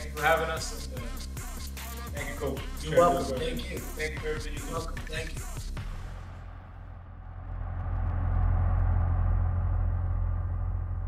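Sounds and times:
deep low rumble: 6.3s - 11.0s.

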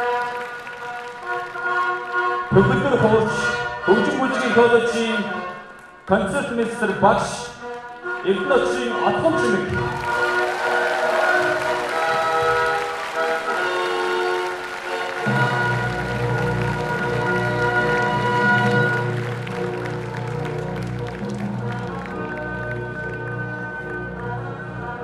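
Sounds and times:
applause: 0.0s - 2.5s, 9.5s - 24.0s
orchestral music sustained chords: 0.0s - 25.0s.

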